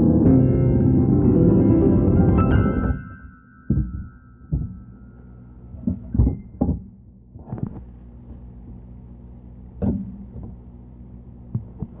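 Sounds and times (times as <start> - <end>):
steady low hum: 0.0 - 12.0
soft dull thumps: 3.6 - 7.9.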